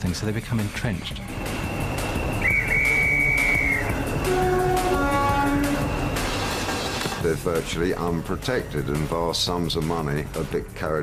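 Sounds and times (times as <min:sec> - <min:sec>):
background music: 0:00.0 - 0:11.0
high held tone: 0:01.3 - 0:07.1
train rumbling on rails: 0:01.3 - 0:07.7.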